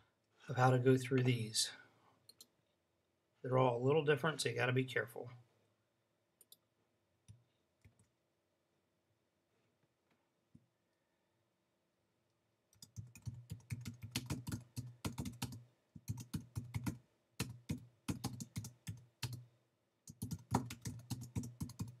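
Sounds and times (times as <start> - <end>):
typing on computer keyboard: 12.8 - 19.4, 20.1 - 22.0.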